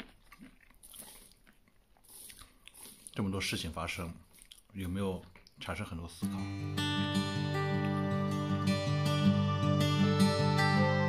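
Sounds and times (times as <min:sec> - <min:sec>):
jaw and teeth clicks: 0:00.0 - 0:03.3, 0:04.2 - 0:05.6
close-up chewing: 0:00.0 - 0:05.6.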